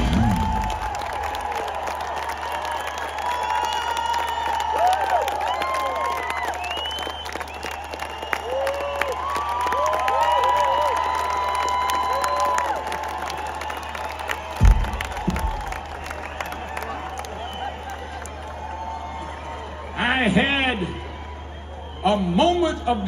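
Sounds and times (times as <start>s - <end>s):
steady clapping: 0.0s - 18.6s
crowd cheering and whooping: 0.0s - 22.8s.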